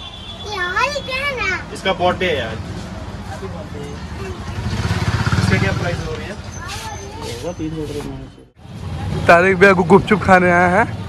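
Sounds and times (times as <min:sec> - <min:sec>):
voices: 0:00.0 - 0:11.0
vehicle engine passing by: 0:02.2 - 0:11.0.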